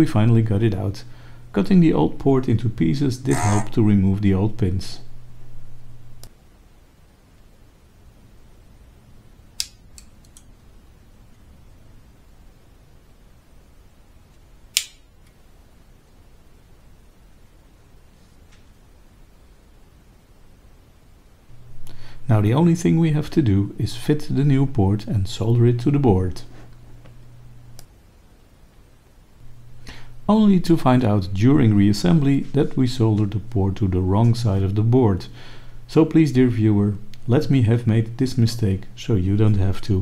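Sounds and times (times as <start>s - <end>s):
low steady hum: 0.0s - 40.0s
sharp click: 9.6s - 10.5s, 14.7s - 15.4s.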